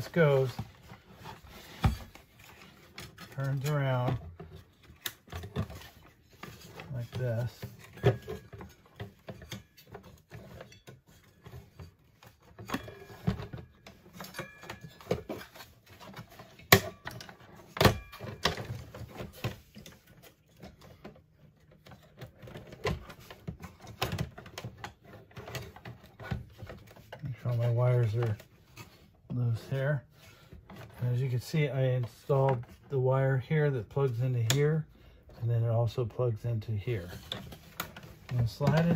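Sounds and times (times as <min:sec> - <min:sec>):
plastic unit clicking and rattling: 0:37.0 - 0:38.9.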